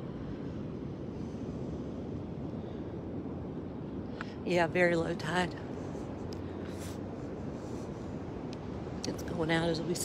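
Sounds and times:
wind rumbling on microphone: 0.0 - 10.0.

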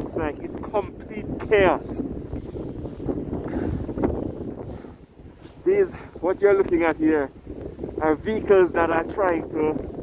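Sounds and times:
wind blowing across microphone: 0.0 - 10.0.

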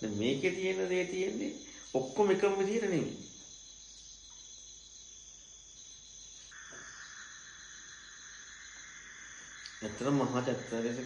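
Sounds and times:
crickets trilling: 0.0 - 11.0
steady hiss: 0.0 - 11.0.

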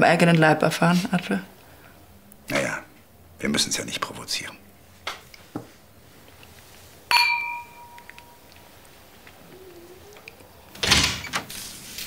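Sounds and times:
wine glass ringing: 7.1 - 8.4.

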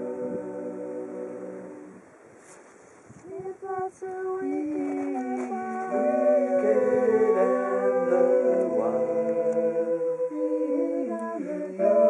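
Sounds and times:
a cappella group singing chord: 0.0 - 2.1, 3.3 - 12.0
faint background noise: 0.0 - 12.0.

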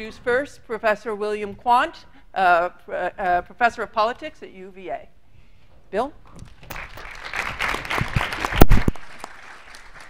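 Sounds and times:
audience applauding: 6.7 - 10.0.

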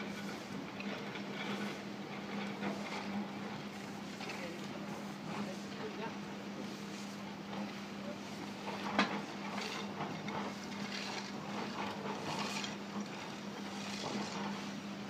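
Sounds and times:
electric gate motor humming: 0.0 - 15.0.

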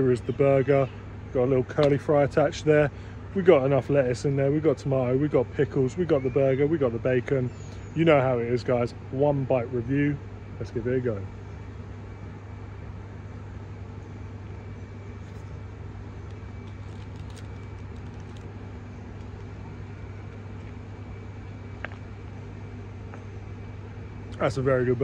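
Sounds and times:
low background hum: 0.0 - 25.0.

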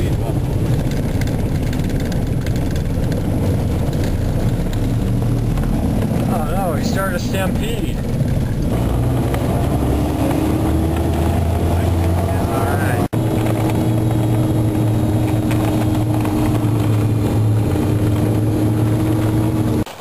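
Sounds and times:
snowcat engine drone: 0.0 - 19.9.

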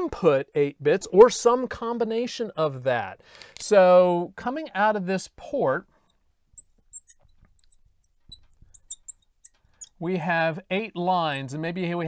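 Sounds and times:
marker squeaking on glass: 4.8 - 10.0, 10.7 - 11.6.

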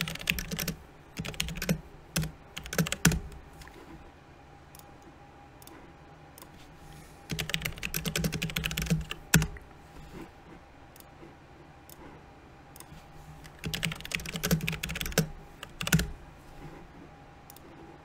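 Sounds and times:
typing on computer keyboard: 0.0 - 3.7, 7.3 - 9.6, 12.8 - 16.2.

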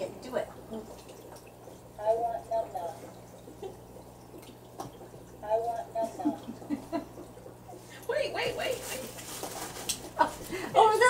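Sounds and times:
women's voices: 8.0 - 9.1, 10.2 - 11.0.

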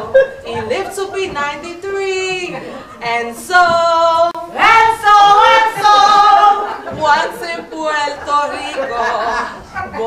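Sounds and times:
woman singing unaccompanied: 0.4 - 10.0.

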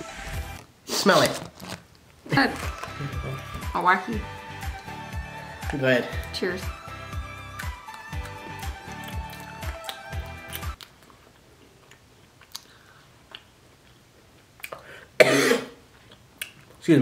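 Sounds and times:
backing music with a beat: 2.6 - 10.8
person burping: 2.9 - 3.5, 15.2 - 15.8
chewing crunchy cookies: 7.6 - 14.9.

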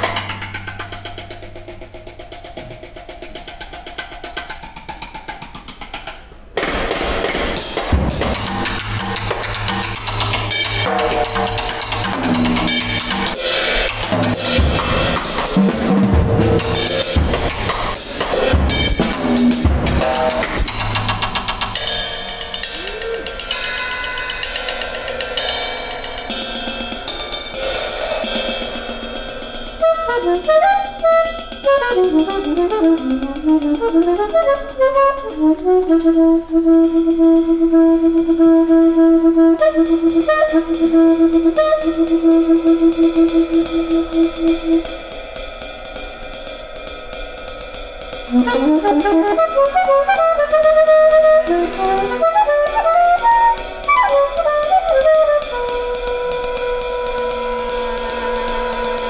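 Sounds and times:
busy drum kit: 0.0 - 59.0
free jazz quartet playing: 29.7 - 45.0, 48.3 - 59.0.

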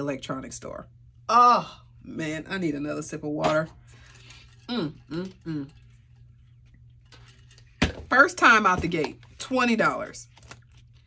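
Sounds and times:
low hum: 0.0 - 7.9.

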